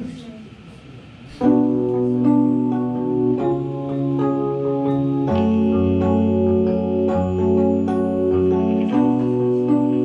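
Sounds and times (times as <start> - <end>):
keyboard sustained chords: 1.4 - 10.0.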